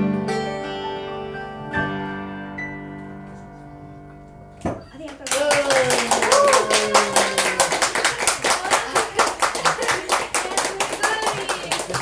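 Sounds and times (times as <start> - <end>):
audience clapping: 5.0 - 12.0
people calling out and cheering: 5.3 - 9.1.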